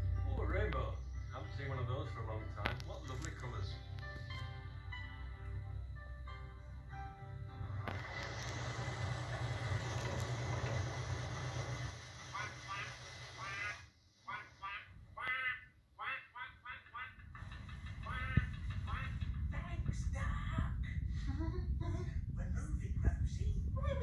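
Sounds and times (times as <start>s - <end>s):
duck quacks: 12.3s - 17.3s, 18.0s - 19.2s.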